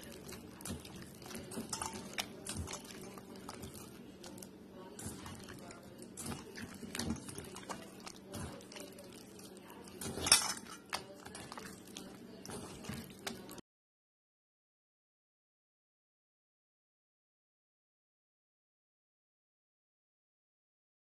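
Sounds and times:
dough squelching: 0.0s - 13.6s.

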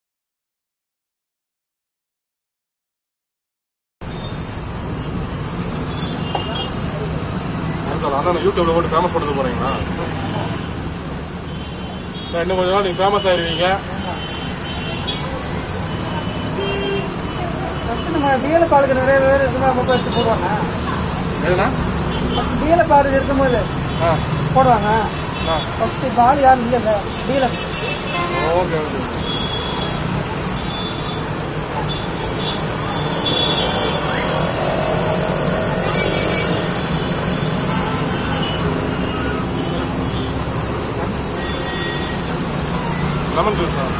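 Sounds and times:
road traffic rumble: 4.0s - 43.9s.

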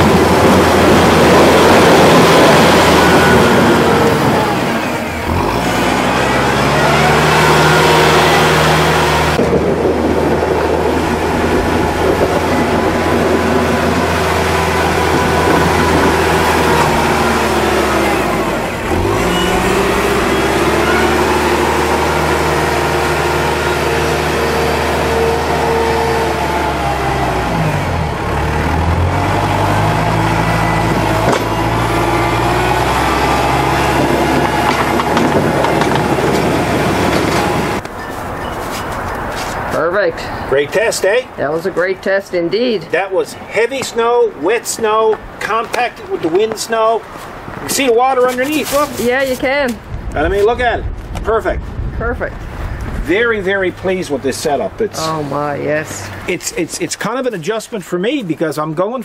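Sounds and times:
snow plow pushing wet snow: 0.0s - 37.8s, 45.4s - 49.6s
tractor diesel engine running hard: 0.0s - 39.4s.

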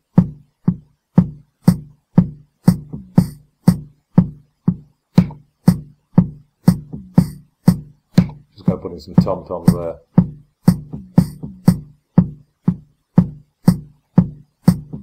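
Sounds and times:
programmed drum loop: 0.0s - 15.0s.

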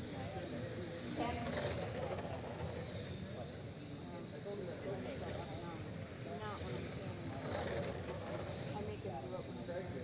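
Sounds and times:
electric rc race cars running: 0.0s - 10.0s.

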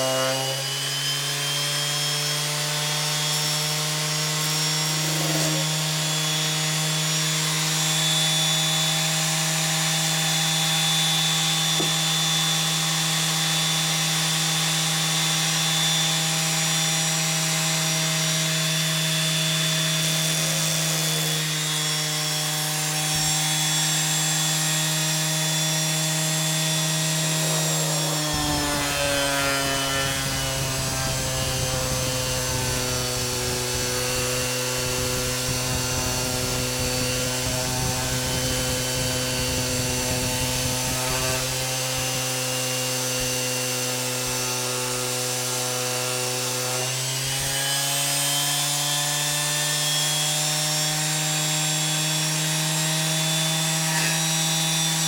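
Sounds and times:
electric sander humming: 0.0s - 55.0s
sander rubbing on wood: 0.0s - 55.0s.

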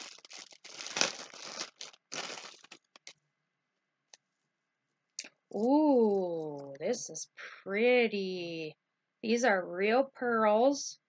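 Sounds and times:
plastic bag crinkling: 0.0s - 3.2s.

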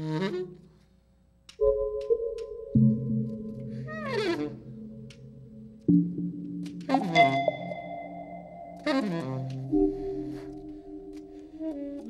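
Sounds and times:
bell ringing: 7.1s - 8.9s.

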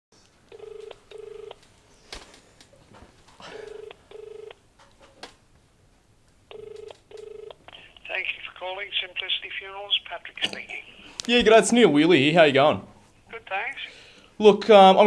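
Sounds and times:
telephone ringback tone: 0.5s - 1.6s, 3.6s - 4.6s, 6.5s - 7.6s.

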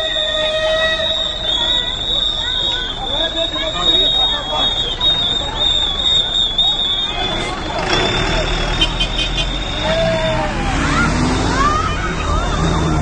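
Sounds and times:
bus engine rumble: 0.0s - 13.0s
people calling out: 0.0s - 13.0s.

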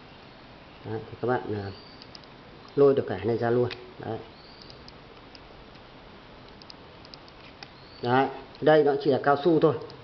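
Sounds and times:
low room noise: 0.0s - 10.0s
light clicks of plastic parts: 6.5s - 7.8s.

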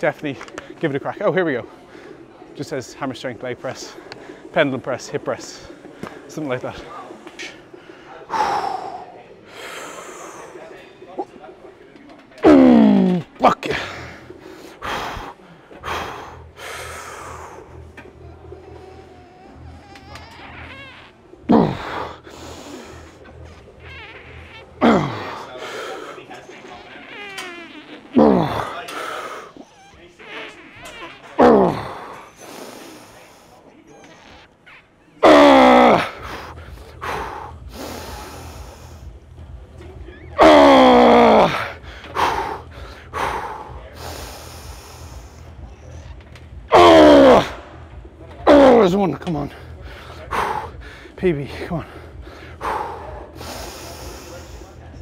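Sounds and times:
man grunting with effort: 21.5s - 22.2s, 24.8s - 25.5s, 28.2s - 28.8s, 31.4s - 32.1s, 40.4s - 42.6s, 46.7s - 47.6s.

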